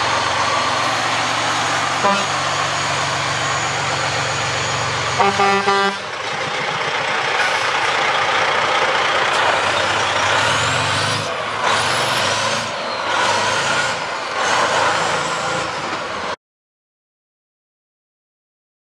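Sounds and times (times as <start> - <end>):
truck diesel engine idling: 0.0 - 14.9.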